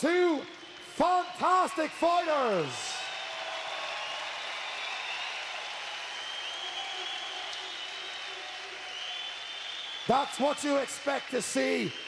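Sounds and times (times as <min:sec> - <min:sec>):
crowd applauding: 0:00.3 - 0:12.0.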